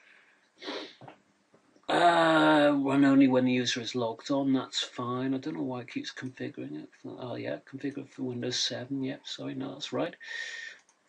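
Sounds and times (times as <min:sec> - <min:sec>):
man inhaling: 0:00.0 - 0:01.0, 0:10.2 - 0:10.8
man sniffing: 0:00.6 - 0:01.0, 0:10.2 - 0:10.8
man speaking: 0:01.9 - 0:10.8.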